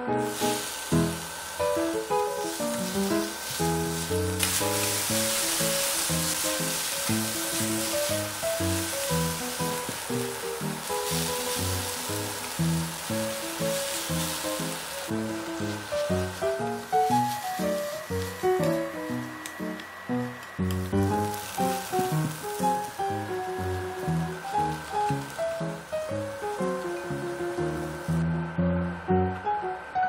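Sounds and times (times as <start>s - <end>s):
onions sizzling in a pan: 0.0s - 29.4s
background music with quick melody: 0.0s - 30.0s.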